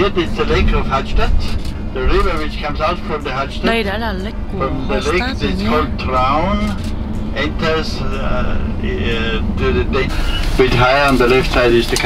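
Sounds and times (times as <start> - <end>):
coach engine rumble: 0.0 - 12.0
person speaking: 3.6 - 6.0.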